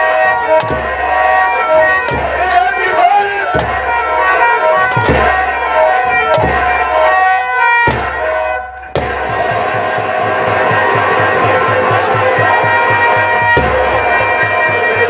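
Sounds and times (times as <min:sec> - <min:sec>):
fast steady drum beat: 0:00.0 - 0:15.0
harmonium holding tones: 0:00.0 - 0:15.0.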